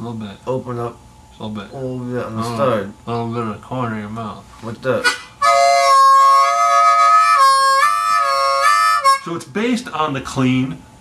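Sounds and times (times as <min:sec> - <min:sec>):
harmonica two-note chord: 0:05.0 - 0:09.4.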